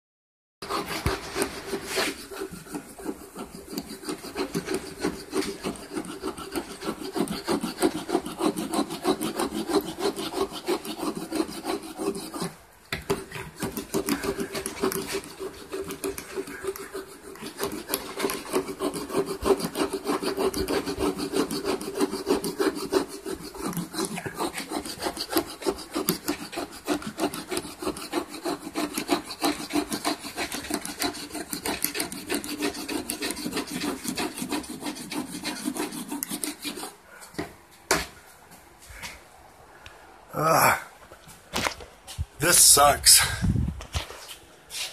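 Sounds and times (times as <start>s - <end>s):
wire brush scrubbing wood: 0.6s - 37.1s.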